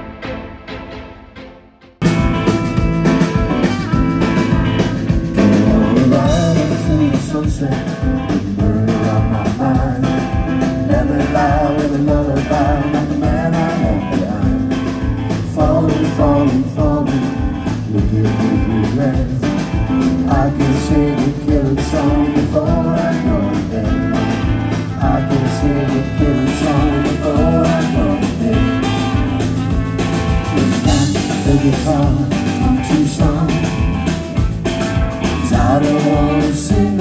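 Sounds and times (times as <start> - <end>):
live blues-rock band: 2.0 - 37.0
person singing: 2.3 - 29.4, 30.5 - 34.2, 35.2 - 37.0.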